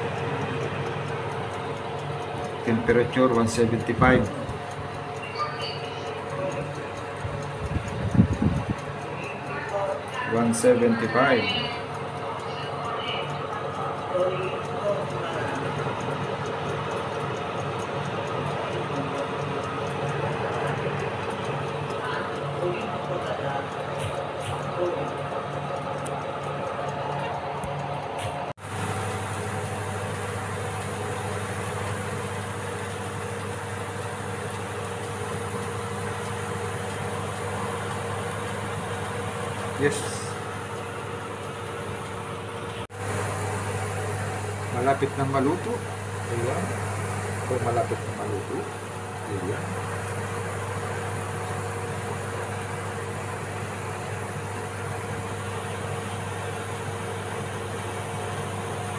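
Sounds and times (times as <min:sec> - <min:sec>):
oven fan humming: 0:00.0 - 0:58.9.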